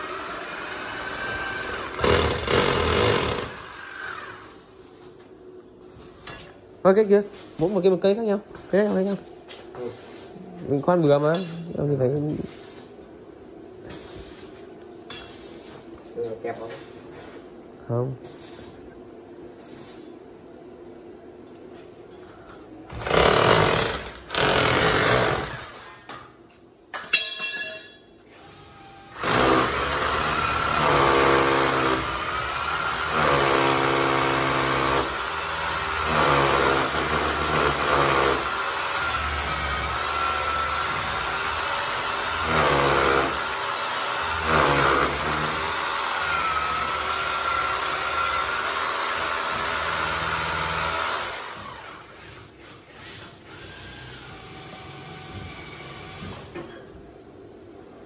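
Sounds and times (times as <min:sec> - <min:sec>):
electric drill boring into wall: 0:00.0 - 0:04.6, 0:22.9 - 0:25.9, 0:28.4 - 0:56.6.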